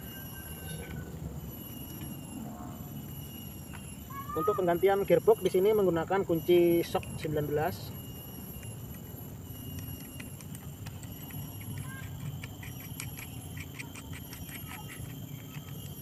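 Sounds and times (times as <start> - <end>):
socket wrench metallic clicks: 9.7 - 16.0.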